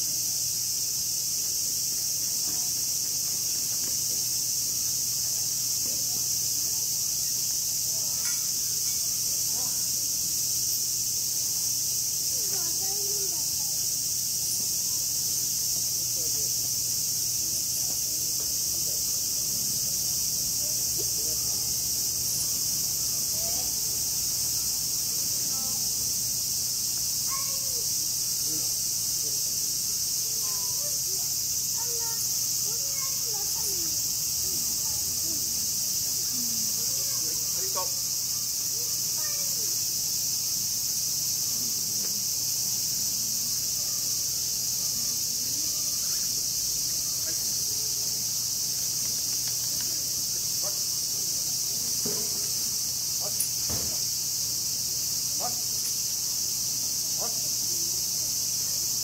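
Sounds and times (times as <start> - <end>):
cicadas shrilling: 0.0 - 59.0
faint distant voices: 0.0 - 59.0.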